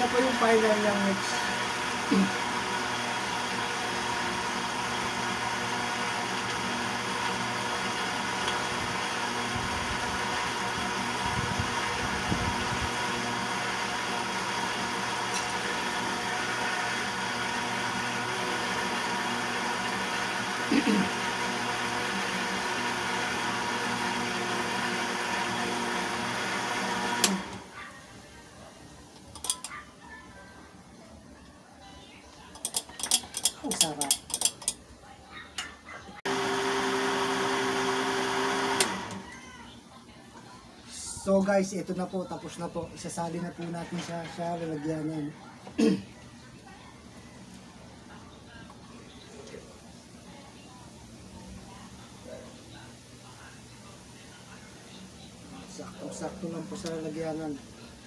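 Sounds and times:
blender running: 0.0 - 27.8, 36.2 - 39.3.

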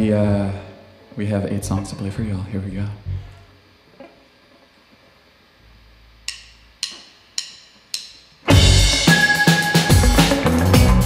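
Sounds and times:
drumsticks clicking together: 6.3 - 8.2.

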